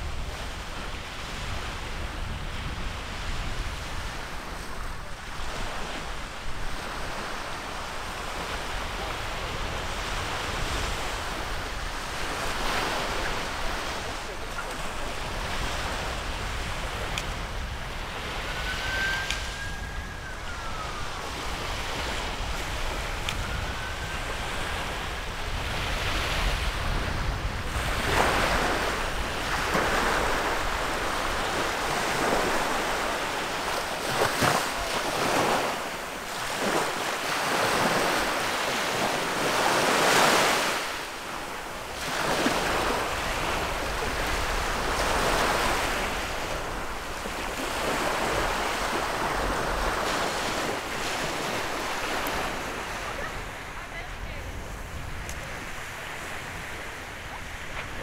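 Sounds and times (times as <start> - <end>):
surf breaking on sandy shore: 0.0 - 58.0
wind rumble on microphone: 0.0 - 58.0.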